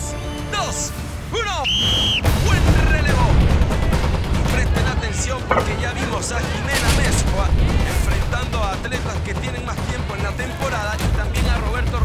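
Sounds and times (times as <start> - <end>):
music: 0.0 - 12.0
whistle blast: 1.6 - 2.3.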